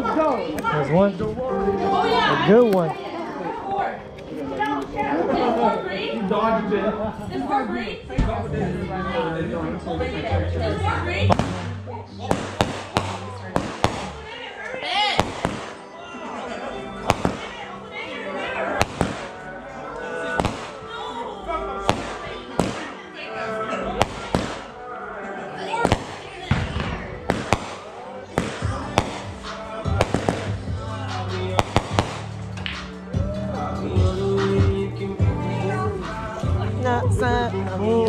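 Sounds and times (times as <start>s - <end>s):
background music: 0.0s - 38.0s
ground firework popping: 11.3s - 11.7s, 12.3s - 14.4s, 15.2s - 15.8s, 17.0s - 17.6s, 18.8s - 19.4s, 20.4s - 20.8s, 21.9s - 23.0s, 24.0s - 24.7s, 25.8s - 30.7s, 31.5s - 32.9s.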